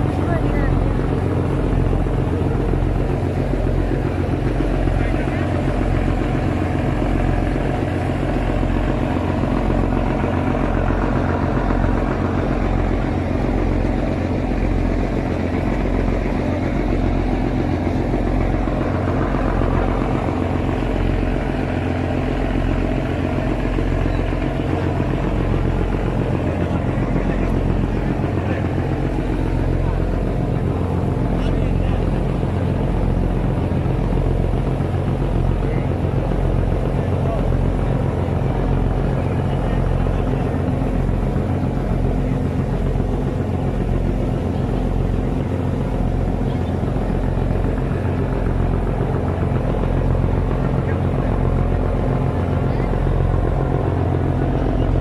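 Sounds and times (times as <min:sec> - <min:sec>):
boat engine droning: 0:00.0 - 0:55.0
water rushing along hull: 0:00.0 - 0:55.0.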